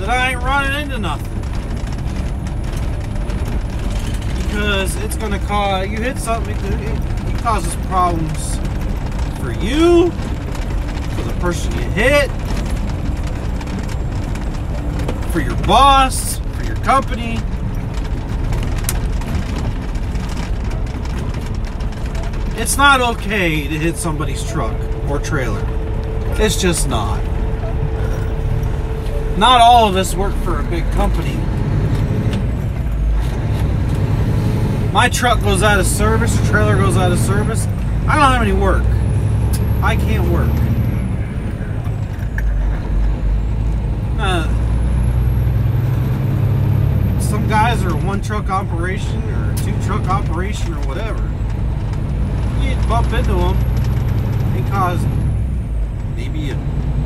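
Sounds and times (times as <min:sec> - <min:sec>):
truck engine drone and road noise: 0:00.0 - 0:57.0.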